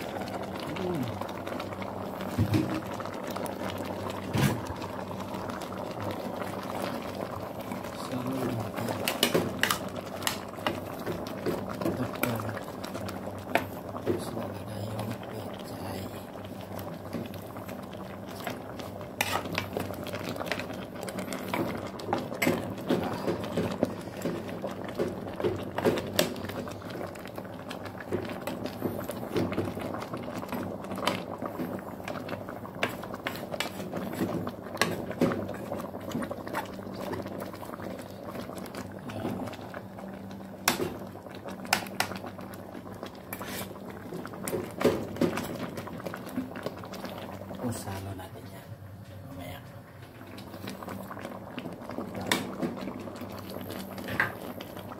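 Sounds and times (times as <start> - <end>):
soup bubbling and popping: 0.0 - 48.0, 49.9 - 54.9.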